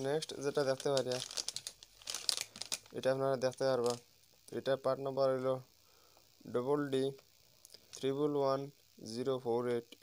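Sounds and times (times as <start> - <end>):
plastic packets crinkling: 0.0 - 4.0.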